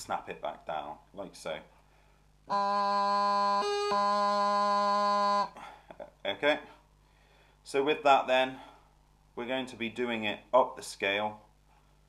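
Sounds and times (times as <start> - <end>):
practice chanter held note: 2.5 - 5.6.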